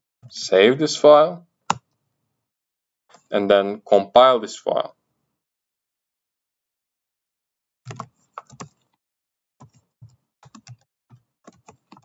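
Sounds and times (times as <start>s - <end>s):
typing on computer keyboard: 7.9s - 8.8s, 10.4s - 12.0s.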